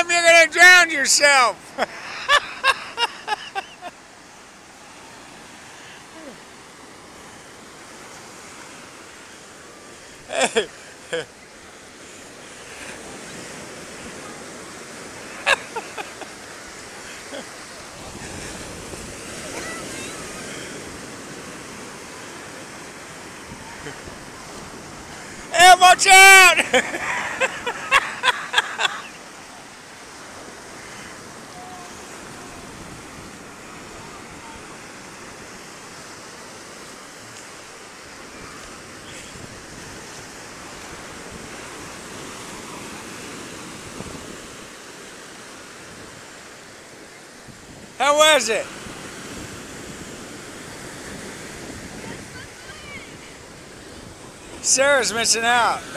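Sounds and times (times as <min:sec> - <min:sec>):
surf breaking on beach: 0:00.0 - 0:55.9.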